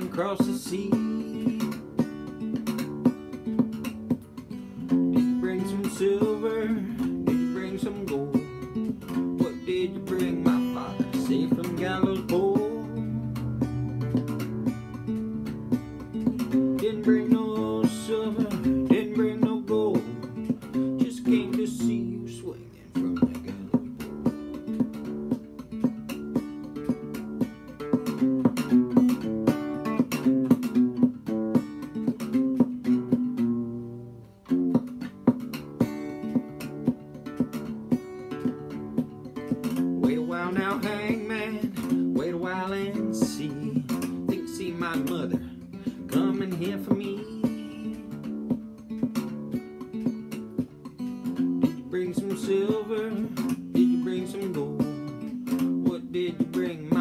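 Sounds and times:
acoustic guitar clawhammer playing: 0.0s - 57.0s.

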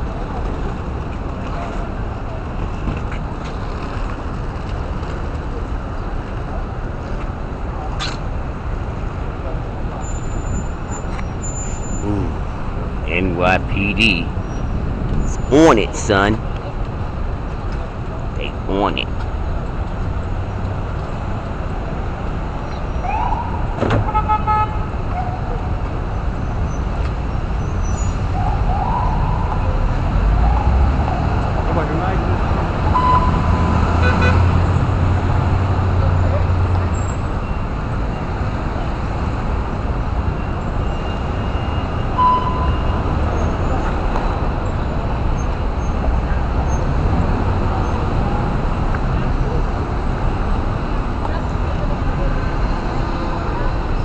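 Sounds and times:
traffic engines rumbling: 0.0s - 54.0s.

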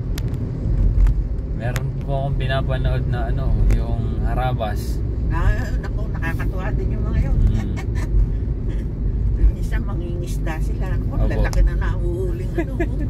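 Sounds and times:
car road and engine rumble: 0.0s - 13.0s
people talking: 1.6s - 8.1s, 9.4s - 13.0s.

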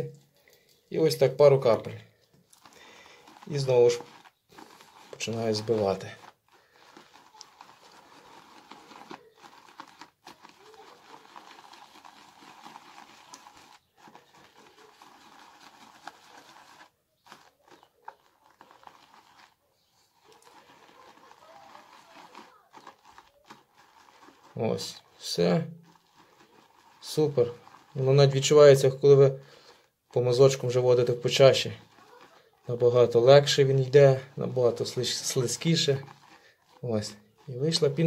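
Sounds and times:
shaving brush whipping lather: 0.9s - 38.0s.

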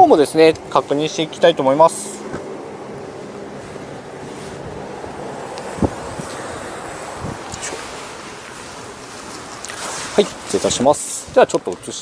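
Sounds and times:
wind on microphone: 2.1s - 9.6s.

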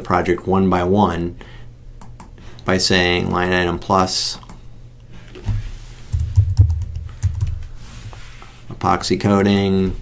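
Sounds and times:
keyboard keystrokes: 6.1s - 7.6s.

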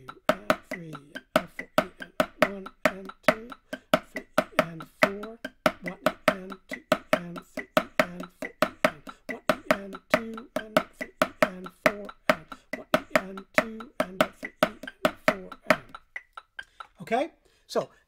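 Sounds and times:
drum played with sticks: 0.0s - 17.0s.

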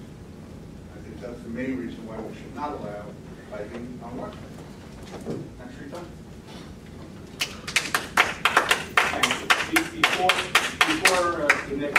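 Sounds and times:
audience clapping: 7.4s - 11.9s.

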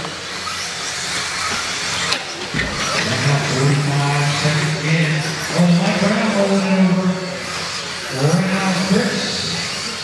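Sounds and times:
small motors whining: 0.0s - 10.0s.

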